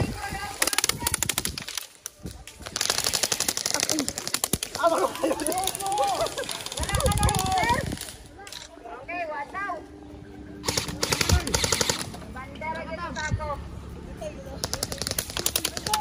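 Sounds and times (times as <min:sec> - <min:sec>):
voices calling out: 0:00.0 - 0:16.0
airsoft rifles firing bursts: 0:00.4 - 0:01.9, 0:02.6 - 0:08.2, 0:10.6 - 0:12.2, 0:14.6 - 0:16.0.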